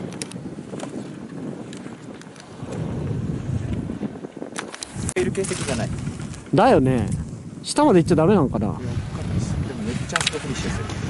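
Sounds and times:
wind on microphone: 0.0s - 11.0s
faint clicks: 0.1s - 1.0s.

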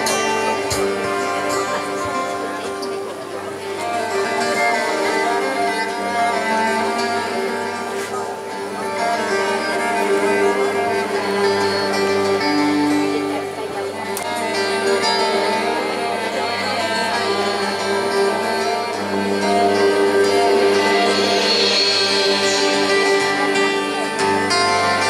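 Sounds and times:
acoustic guitar: 0.0s - 25.0s
bass guitar: 0.0s - 25.0s
cello: 0.0s - 25.0s.

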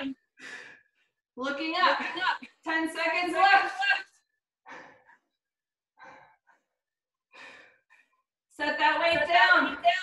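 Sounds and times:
woman breathing hard: 0.3s - 1.2s, 4.6s - 8.3s.

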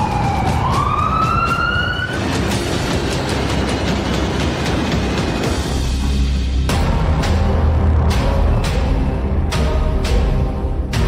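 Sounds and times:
siren wailing: 0.0s - 2.4s.

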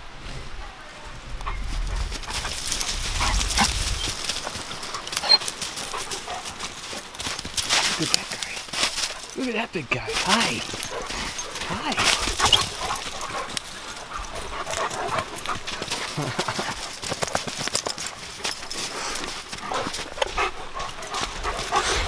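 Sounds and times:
paws crunching on snow: 0.4s - 22.0s
dog vocal sounds: 1.5s - 9.4s, 10.1s - 22.0s.

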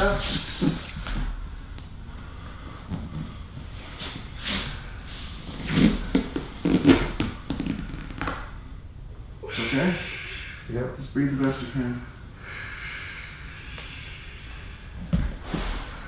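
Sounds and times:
person breathing hard: 0.4s - 6.4s, 9.5s - 10.7s, 11.9s - 16.0s.

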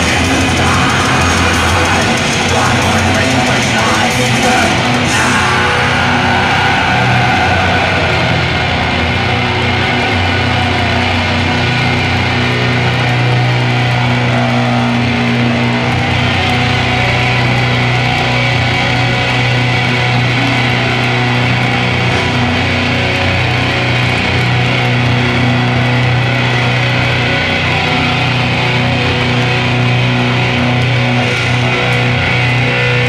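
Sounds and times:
bass guitar: 0.0s - 33.0s
distorted electric guitars: 0.0s - 33.0s
drums: 0.0s - 33.0s.

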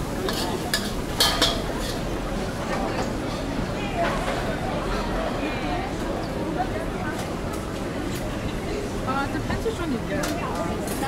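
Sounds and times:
metal utensils clinking on pans: 0.1s - 2.1s.

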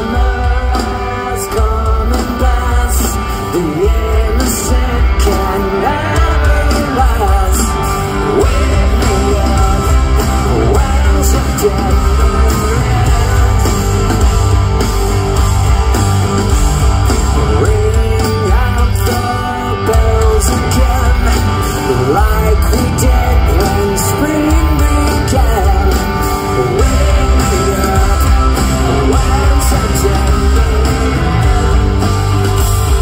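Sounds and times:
live rock band playing: 0.0s - 33.0s.

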